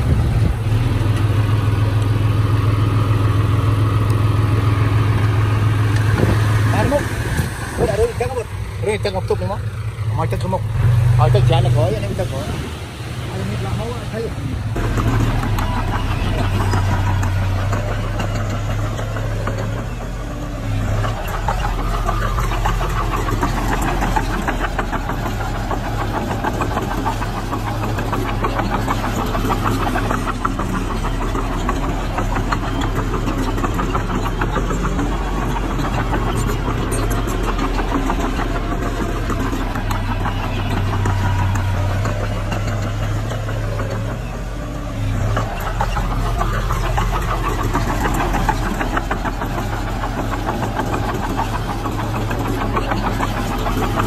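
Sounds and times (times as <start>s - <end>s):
heavy machinery diesel engine: 0.0s - 54.0s.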